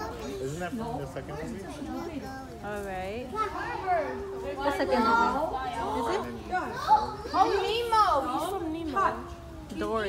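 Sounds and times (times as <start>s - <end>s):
children talking and calling out: 0.0s - 9.9s.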